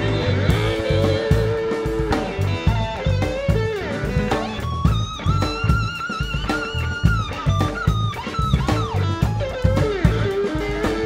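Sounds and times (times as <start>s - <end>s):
bass guitar: 0.0s - 11.0s
drum kit steady beat: 0.0s - 11.0s
electric guitar bending notes: 0.0s - 11.0s.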